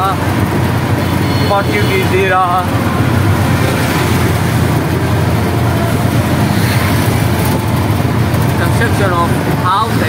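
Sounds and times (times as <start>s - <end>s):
auto-rickshaw engine and road noise: 0.0s - 10.0s.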